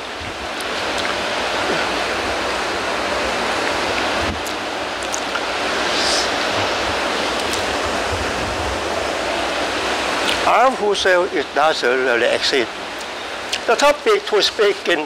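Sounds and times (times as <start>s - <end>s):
rushing water-like noise: 0.0s - 15.0s.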